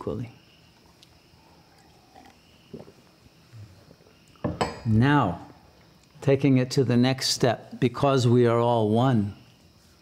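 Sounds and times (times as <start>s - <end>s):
glass clinks: 4.4s - 4.9s.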